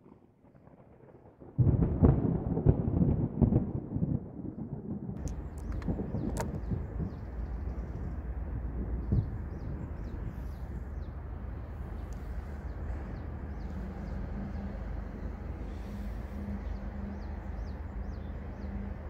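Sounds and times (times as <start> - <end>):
deep rumble: 0.6 - 19.0.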